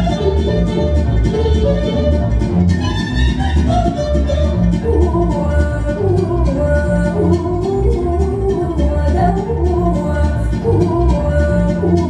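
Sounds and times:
pulsing bass beat: 0.0s - 12.0s
violin melody: 0.0s - 12.0s.

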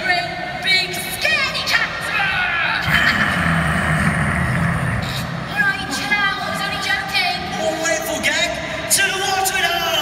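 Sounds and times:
indistinct voices: 1.0s - 8.3s
steady low rumble: 2.8s - 7.4s.

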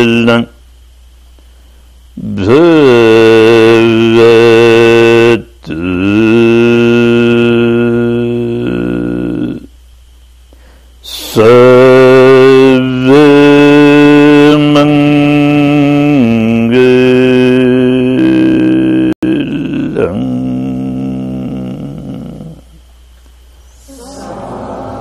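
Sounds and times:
man chanting: 0.0s - 0.6s, 2.2s - 9.7s, 11.0s - 22.8s.

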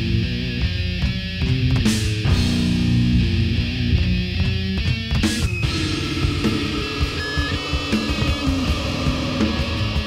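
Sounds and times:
distorted electric guitars: 0.0s - 10.0s
fast dense drumming: 1.0s - 10.0s.

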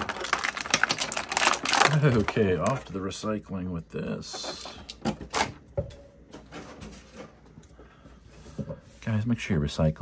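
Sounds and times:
plastic packaging rustling: 0.0s - 3.2s.

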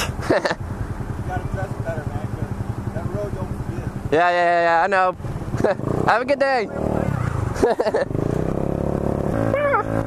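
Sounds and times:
person laughing: 0.0s - 0.6s, 5.6s - 5.9s, 7.6s - 8.2s, 9.5s - 10.0s.

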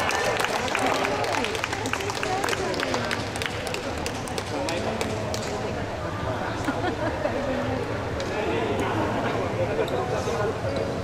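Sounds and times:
people talking in a hall: 0.0s - 11.0s.

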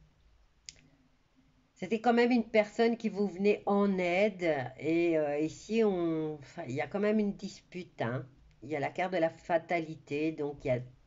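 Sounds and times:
woman speaking: 1.8s - 11.0s.

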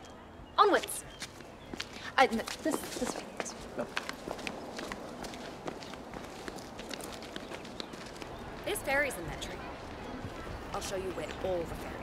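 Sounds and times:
footsteps on paved path: 0.7s - 12.0s.

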